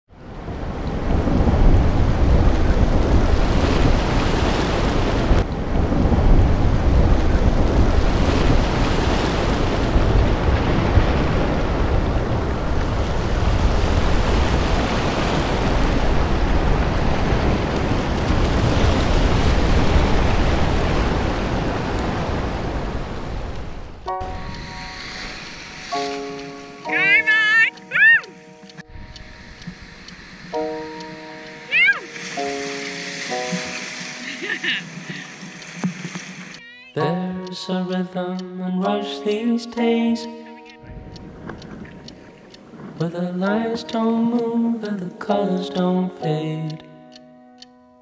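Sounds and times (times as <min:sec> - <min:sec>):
ocean surf: 0:00.1 - 0:46.9
wind rushing: 0:00.2 - 0:27.0, 0:28.3 - 0:36.6
held music notes: 0:24.1 - 0:35.8.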